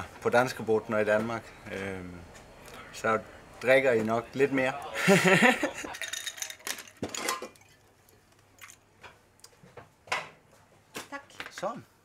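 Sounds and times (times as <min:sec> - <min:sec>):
glassware and bottles clinking: 0:05.7 - 0:07.8.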